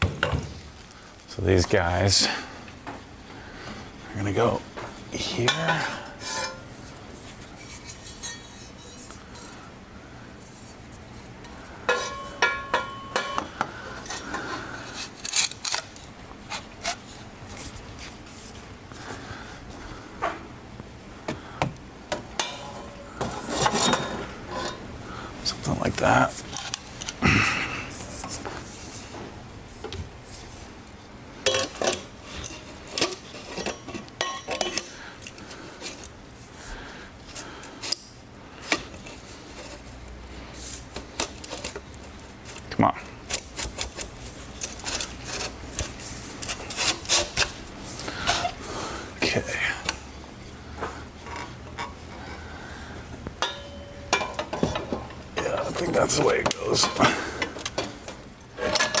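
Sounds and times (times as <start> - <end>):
metal clattering and scraping: 5.2 - 9.6, 11.9 - 13.4, 22.4 - 24.9
metal pipes clinking and clanking: 5.4 - 6.7, 7.6 - 9.5, 11.9 - 14.4, 22.1 - 24.8, 31.4 - 35.0, 53.4 - 59.0.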